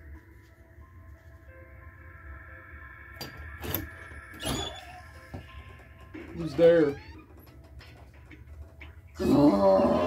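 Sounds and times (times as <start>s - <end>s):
door squeak: 3.6s - 7.8s.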